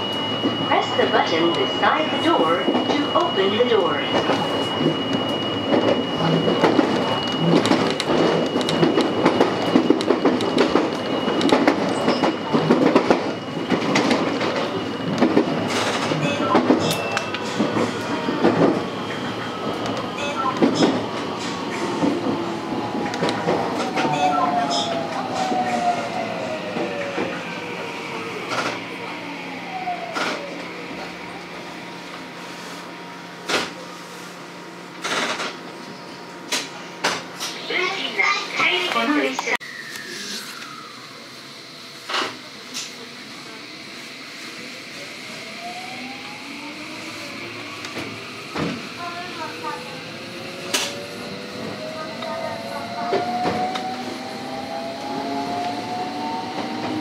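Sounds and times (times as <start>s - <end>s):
traction motors whining: 0.0s - 32.2s, 44.6s - 57.0s.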